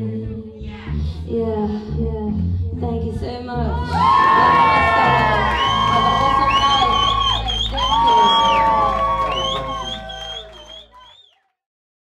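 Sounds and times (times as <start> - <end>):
steady bass: 0.0 - 11.0
crowd whooping: 3.8 - 11.4.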